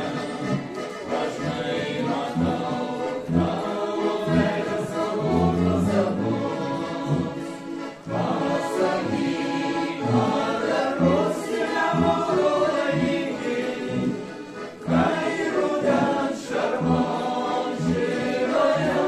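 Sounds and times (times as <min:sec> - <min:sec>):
mixed vocal ensemble singing: 0:00.0 - 0:19.0
piano accordion: 0:00.0 - 0:19.0.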